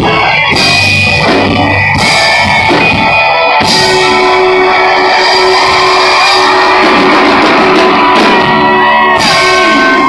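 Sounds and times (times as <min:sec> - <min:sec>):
distorted electric guitar: 0:00.0 - 0:10.0
drums: 0:00.0 - 0:10.0
live rock band playing: 0:00.0 - 0:10.0.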